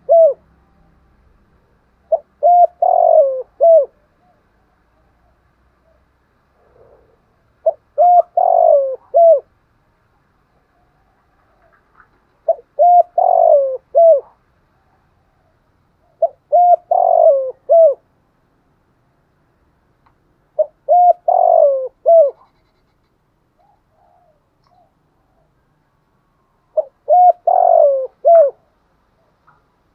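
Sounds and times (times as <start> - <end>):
dove cooing: 0.0 - 0.5, 2.0 - 9.5, 10.6 - 18.1, 20.5 - 22.9, 23.6 - 25.6, 26.4 - 29.6.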